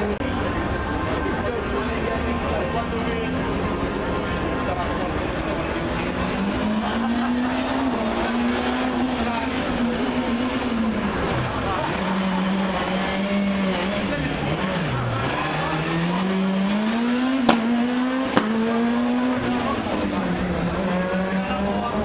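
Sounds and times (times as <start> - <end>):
rally car engine at high revs: 1.9 - 22.0.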